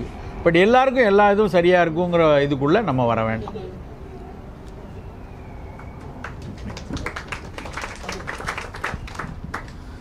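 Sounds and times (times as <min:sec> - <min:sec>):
scattered hand clapping: 0:05.8 - 0:09.8.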